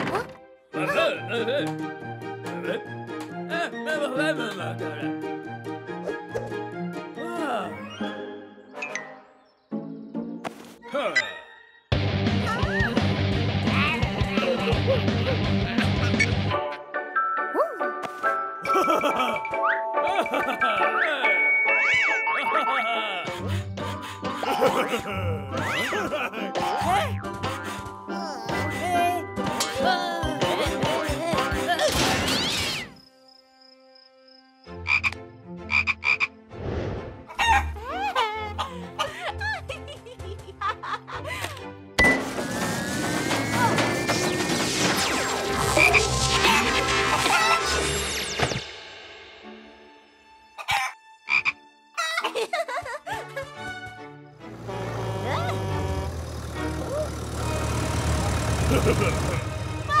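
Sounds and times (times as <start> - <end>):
music: 0.0 - 60.0
squeaky cartoon voice sounds: 15.7 - 16.9, 21.7 - 23.0, 45.8 - 47.9, 55.1 - 56.0.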